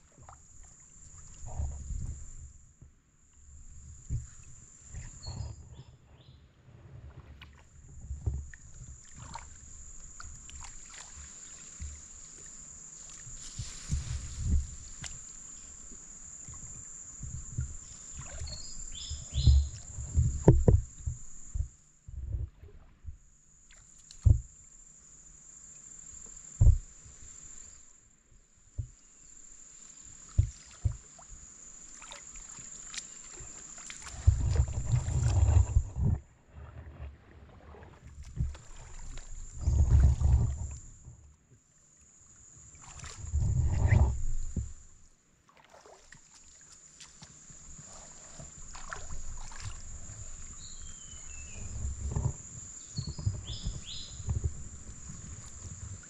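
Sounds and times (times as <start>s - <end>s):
water sloshing around boat: 0.0s - 6.1s, 6.8s - 24.9s, 28.4s - 56.0s
high-pitched insect trill: 8.5s - 21.9s, 23.2s - 28.0s, 28.8s - 35.8s, 46.5s - 56.0s
sharp knocks on boat: 18.4s - 23.2s, 24.2s - 24.5s, 26.6s - 27.0s, 28.7s - 29.0s, 30.4s - 31.0s.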